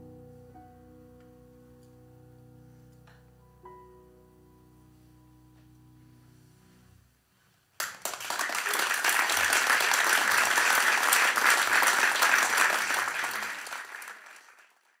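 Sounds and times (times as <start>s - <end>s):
audience applause: 7.8s - 15.0s.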